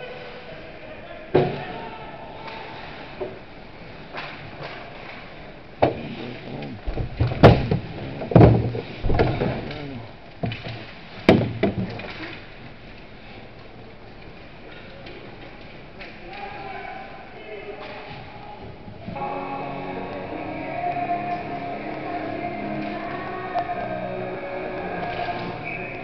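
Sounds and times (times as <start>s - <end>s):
players shouting: 0.0s - 2.8s, 16.2s - 26.0s
puck and sticks banging boards: 5.8s - 12.4s.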